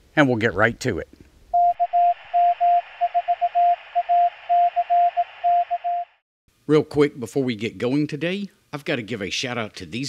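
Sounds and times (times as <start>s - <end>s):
morse code sidetone: 1.6s - 6.2s.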